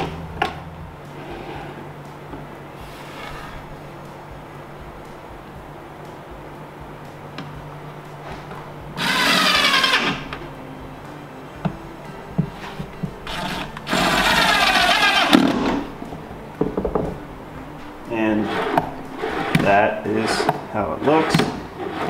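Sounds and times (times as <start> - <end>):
power driver driving screws: 9.0 - 10.3, 13.3 - 15.8.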